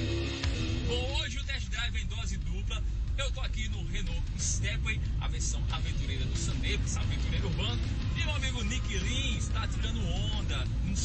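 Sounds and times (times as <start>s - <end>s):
car road and engine rumble: 0.0s - 11.0s
man talking: 0.8s - 11.0s.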